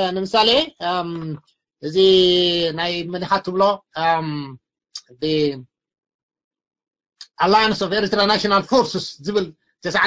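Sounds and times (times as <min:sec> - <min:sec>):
man speaking over voice chat: 0:00.0 - 0:05.6, 0:07.2 - 0:10.0.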